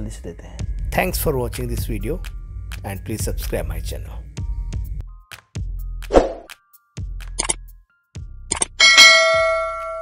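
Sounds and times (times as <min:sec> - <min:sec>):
bell-like ding: 0:08.8 - 0:10.0.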